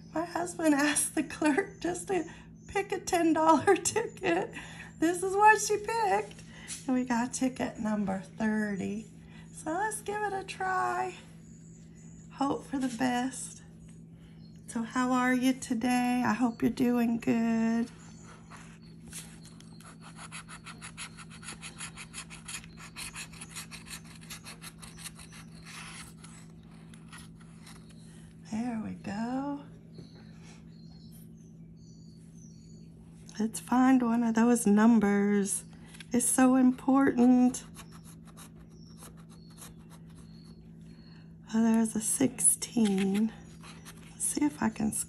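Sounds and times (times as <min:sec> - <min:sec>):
scratching lottery ticket: 0:19.4 - 0:28.0, 0:37.2 - 0:40.6
metal scraping lottery ticket: 0:42.7 - 0:44.2.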